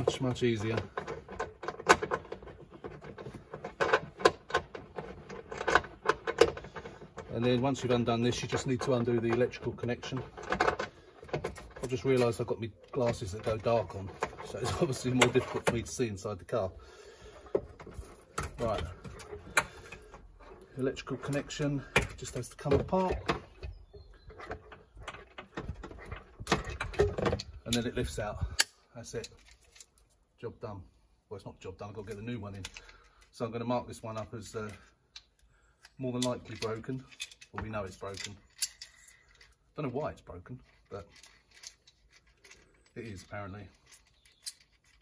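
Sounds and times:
clicks and rattles of plastic parts: 0.0 - 30.2, 31.8 - 45.0.

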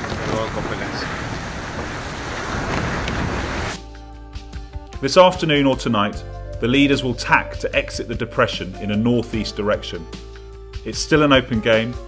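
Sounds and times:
sea water rushing past yacht: 0.0 - 3.9
wind across microphone: 0.0 - 3.9
music with sustained chords: 3.8 - 12.0.

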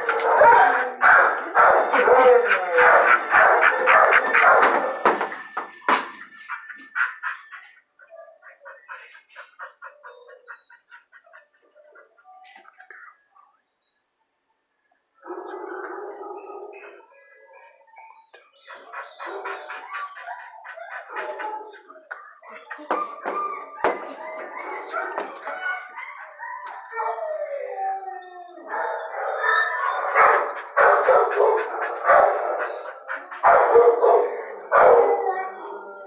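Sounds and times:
dogs barking and howling: 0.0 - 12.8, 15.2 - 36.0.

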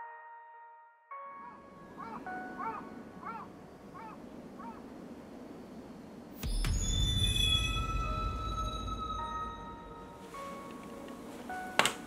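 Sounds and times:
faint outdoor ambience: 1.2 - 12.0
deep low drone with ringing tones: 6.4 - 10.1.

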